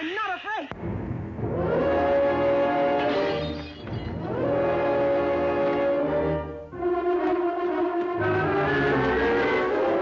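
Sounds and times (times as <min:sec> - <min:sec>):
orchestral brass chords: 0:00.8 - 0:03.6, 0:04.2 - 0:10.0.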